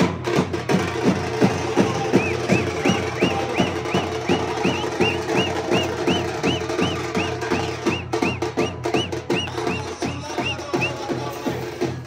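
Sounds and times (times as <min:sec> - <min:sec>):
frame drums beaten with sticks: 0:00.0 - 0:12.0
high chirping tone: 0:01.8 - 0:11.0.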